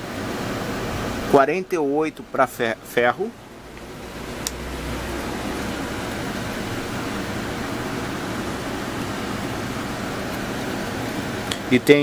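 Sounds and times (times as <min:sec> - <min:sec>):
steady broadband hiss: 0:00.0 - 0:12.0.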